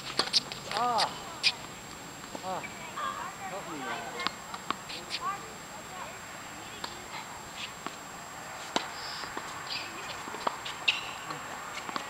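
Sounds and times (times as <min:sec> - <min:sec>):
tennis ball knocks: 0:08.7 - 0:12.0.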